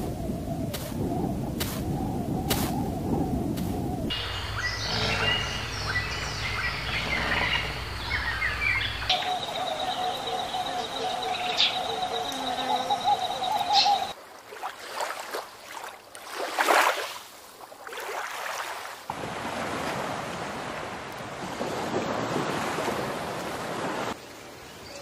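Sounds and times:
long wavering animal call: 4.1s - 14.1s
short chirping birdlike calls: 4.1s - 14.1s.

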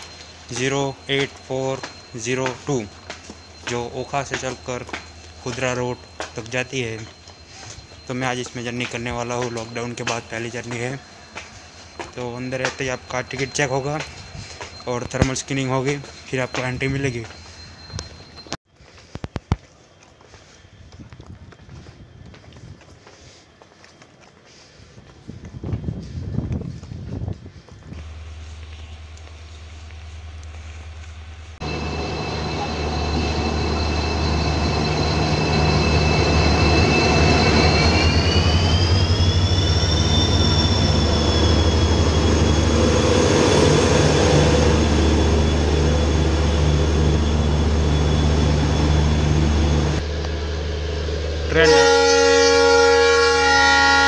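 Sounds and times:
footsteps: 0.0s - 31.7s
diesel locomotive engine idling: 27.6s - 53.3s.

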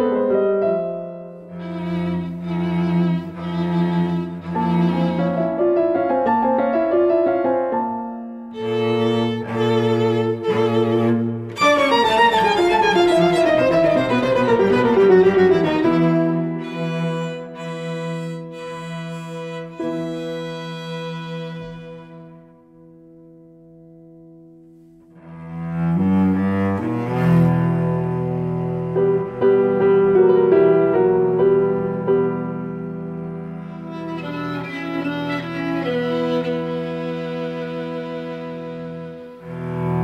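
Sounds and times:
piano trio chamber music: 0.0s - 40.0s
cello sustained notes: 1.4s - 5.8s, 8.5s - 22.7s, 25.0s - 40.0s
violin sustained notes: 8.5s - 22.7s.

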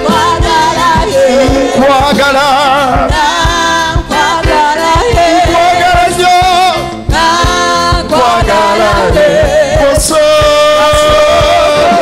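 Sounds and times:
kick drum beat: 0.0s - 12.0s
live band playing: 0.0s - 12.0s
man singing into microphone: 1.0s - 3.2s, 5.3s - 6.9s, 8.1s - 12.0s.

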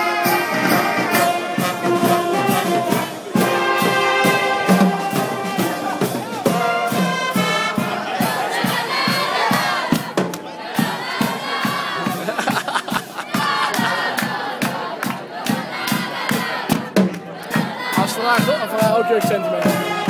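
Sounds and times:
steady drum beat: 0.0s - 20.0s.

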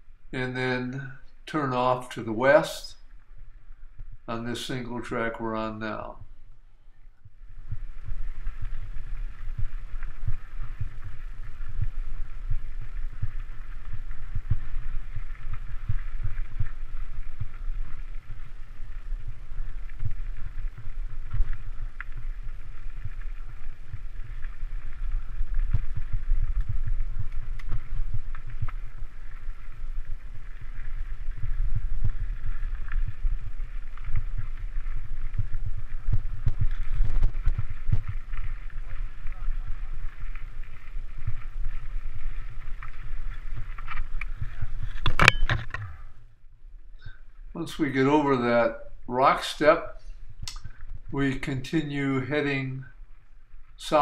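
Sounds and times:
mountain bike rumbling on dirt: 7.4s - 46.2s.

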